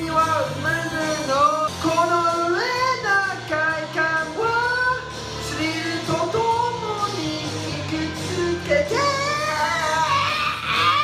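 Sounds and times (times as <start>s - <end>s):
man singing into microphone: 0.0s - 11.0s
rock backing track: 0.0s - 11.0s.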